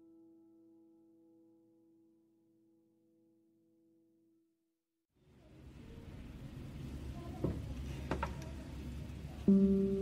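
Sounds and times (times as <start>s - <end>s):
low room hum: 5.2s - 10.0s.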